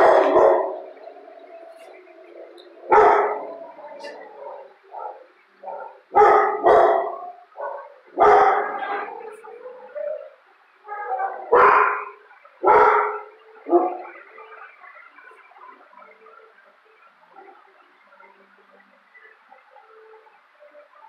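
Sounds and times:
dog barking loudly: 0.0s - 1.0s, 2.9s - 9.1s, 11.5s - 14.1s.

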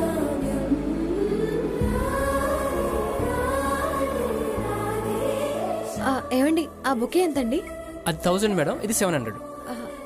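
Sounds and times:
gliding vocal lines: 0.0s - 10.0s.

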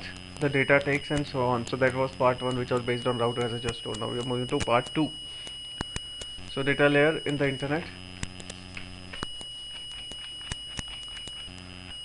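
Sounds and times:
high-pitched whine: 0.0s - 12.0s
keyboard and mouse clicks: 8.3s - 11.5s.

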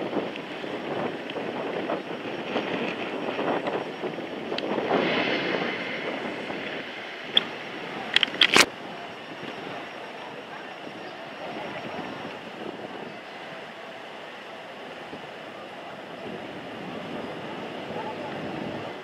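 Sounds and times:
wind rushing over microphone: 0.0s - 13.9s, 15.0s - 19.0s
sharp clicks: 8.1s - 8.7s.

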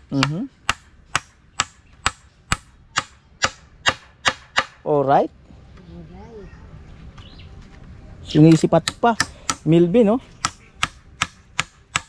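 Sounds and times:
hammer striking wood: 0.0s - 4.8s, 8.5s - 9.7s, 10.4s - 12.0s.

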